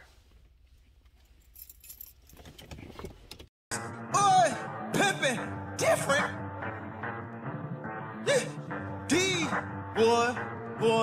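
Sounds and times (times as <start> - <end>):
jingling rattling clicks: 1.4 - 3.5.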